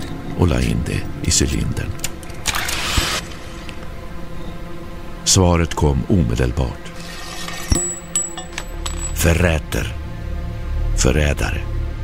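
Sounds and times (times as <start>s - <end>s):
background music drone: 0.0s - 12.0s.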